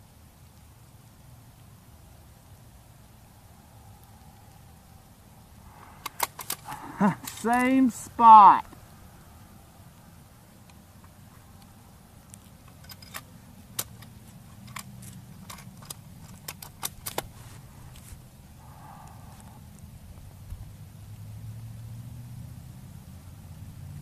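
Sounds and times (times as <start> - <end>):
low steady rumble: 0.0 - 16.4, 17.3 - 24.0
faint sharp ticks and clicks: 3.9 - 4.7, 9.9 - 17.3, 17.9 - 20.7.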